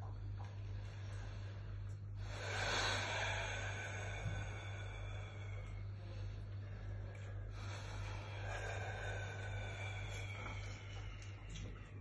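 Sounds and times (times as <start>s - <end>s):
steady low hum: 0.0s - 12.0s
person breathing heavily: 0.2s - 12.0s.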